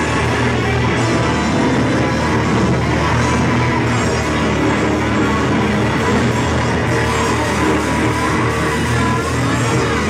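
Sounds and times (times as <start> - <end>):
electric guitar: 0.0 - 10.0
keyboard: 0.0 - 10.0
live rock band playing: 0.0 - 10.0.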